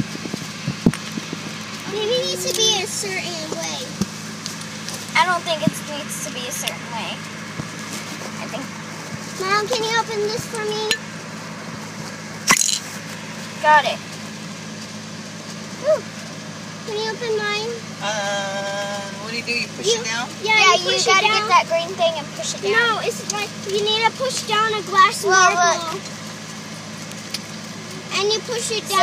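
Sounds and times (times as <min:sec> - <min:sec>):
car idling hum: 0:00.0 - 0:29.0
girl saying ooh: 0:15.8 - 0:16.1.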